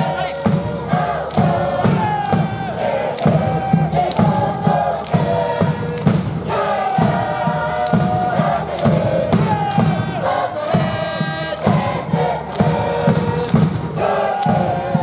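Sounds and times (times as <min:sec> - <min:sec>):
bass drum beating: 0:00.0 - 0:15.0
cheer squad singing: 0:00.0 - 0:15.0.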